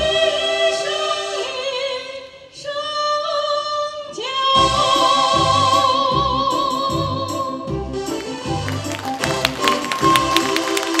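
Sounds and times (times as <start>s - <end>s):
audience clapping: 8.2s - 11.0s.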